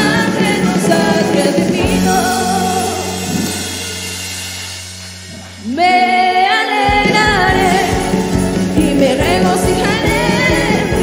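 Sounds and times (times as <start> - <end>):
woman singing worship song: 0.0 - 4.2, 5.5 - 11.0
acoustic guitar: 6.9 - 11.0.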